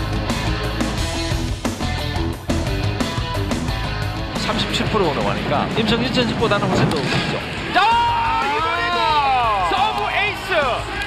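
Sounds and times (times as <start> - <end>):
background music: 0.0 - 11.0
long drawn-out shout: 7.7 - 11.0.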